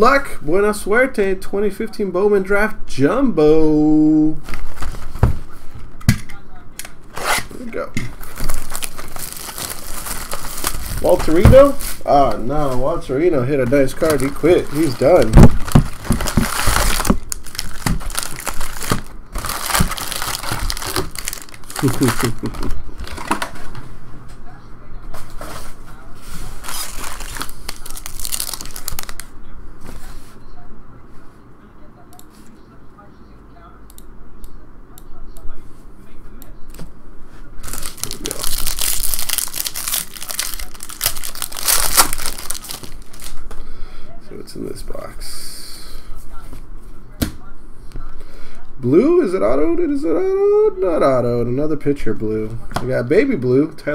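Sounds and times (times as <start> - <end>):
foil packs crinkling: 8.1 - 12.9, 13.6 - 23.4, 26.5 - 29.3, 37.6 - 43.4.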